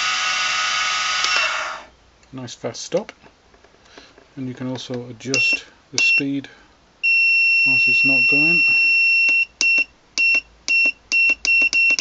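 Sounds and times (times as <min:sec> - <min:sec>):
short high beeps: 0:05.4 - 0:06.2.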